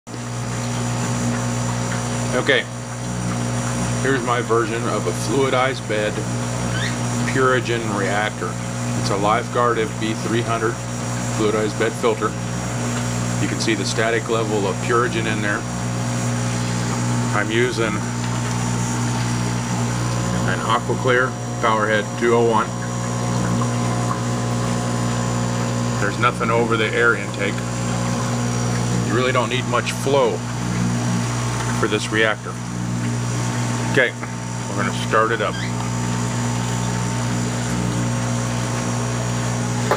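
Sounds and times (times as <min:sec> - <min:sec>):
low electrical hum: 0:00.1 - 0:39.9.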